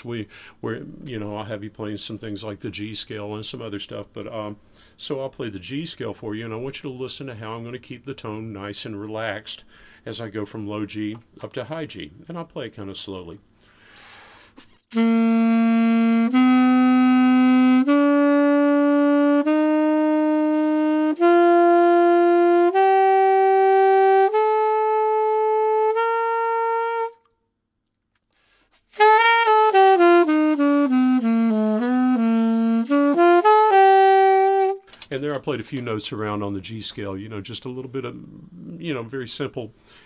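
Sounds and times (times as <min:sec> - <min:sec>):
alto saxophone playing scales: 0:14.7 - 0:27.4, 0:28.4 - 0:35.1.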